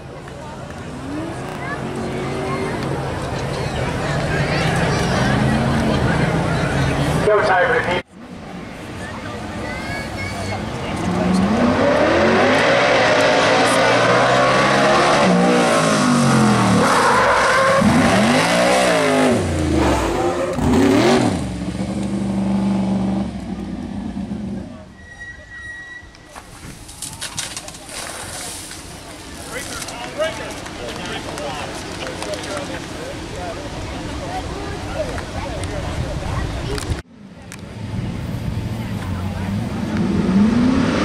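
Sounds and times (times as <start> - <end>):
engine revving: 10.9 - 24.6, 38.0 - 41.0.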